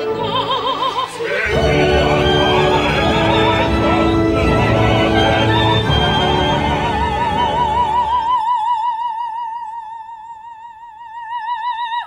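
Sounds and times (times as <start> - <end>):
singing voice with vibrato: 0.0 - 12.0
orchestra playing loudly: 1.4 - 8.2.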